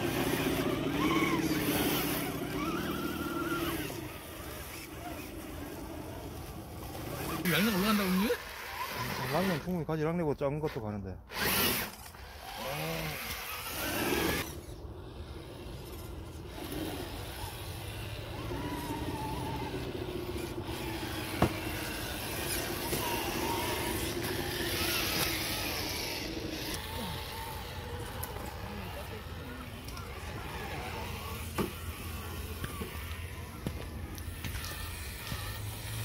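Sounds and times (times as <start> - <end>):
rc car motor whining: 0.0 - 10.0, 11.2 - 36.0.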